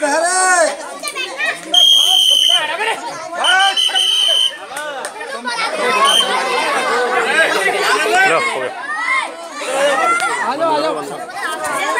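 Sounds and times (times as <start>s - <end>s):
children talking and shouting: 0.0s - 11.9s.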